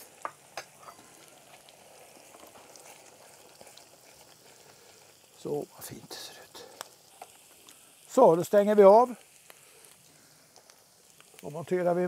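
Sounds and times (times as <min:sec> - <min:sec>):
mushrooms sizzling in a pan: 0:00.0 - 0:12.0.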